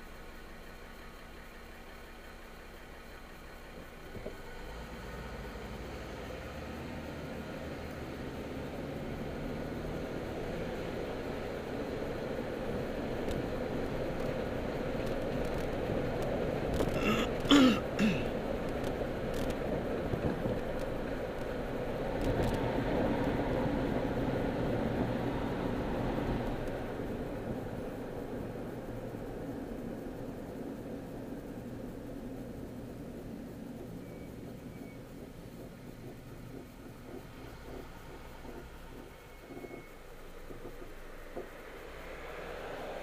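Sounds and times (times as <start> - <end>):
car engine and road noise: 0.0 - 43.0
man clearing his throat: 17.0 - 18.3.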